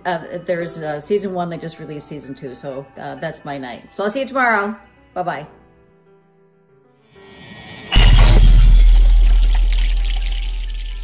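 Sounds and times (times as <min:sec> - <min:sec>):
bright shimmering crash: 0:07.0 - 0:11.0.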